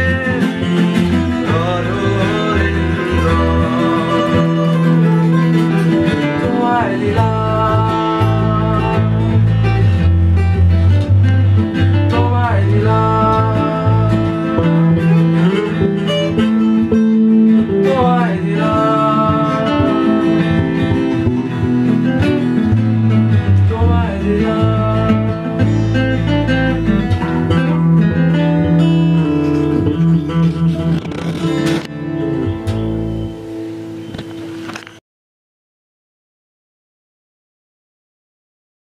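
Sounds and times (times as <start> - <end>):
acoustic guitars playing: 0.0 - 35.0
electric bass guitar: 0.0 - 35.0.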